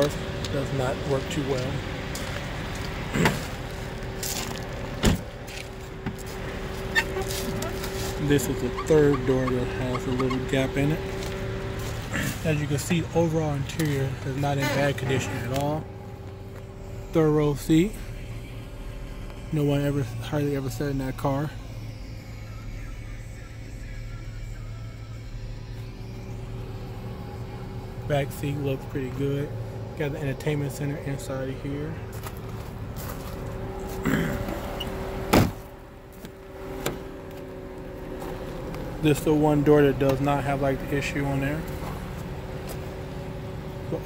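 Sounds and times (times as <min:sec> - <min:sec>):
car engine idling: 0:00.0 - 0:44.0
steady hum: 0:00.0 - 0:44.0
faint music playing: 0:05.3 - 0:35.1
car door knocks: 0:35.3 - 0:35.6.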